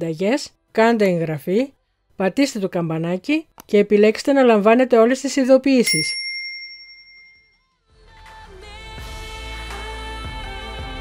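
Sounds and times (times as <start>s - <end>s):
bright bell ding: 5.9s - 7.6s.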